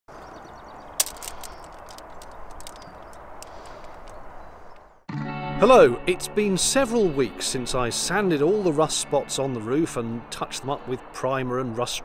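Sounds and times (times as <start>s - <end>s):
light clicks and crackles: 1.0s - 4.9s.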